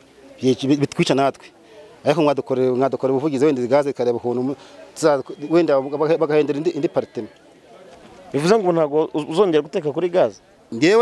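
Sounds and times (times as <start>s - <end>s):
man speaking: 0.4s - 7.4s, 8.3s - 11.0s.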